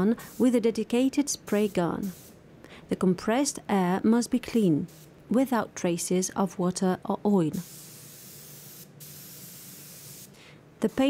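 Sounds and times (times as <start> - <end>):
spray gun hissing: 0.1 - 0.6, 1.5 - 2.4, 7.6 - 11.0.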